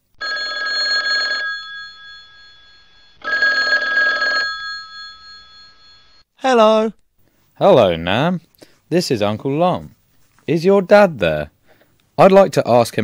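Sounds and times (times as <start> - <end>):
telephone ringing: 0.2 - 6.2.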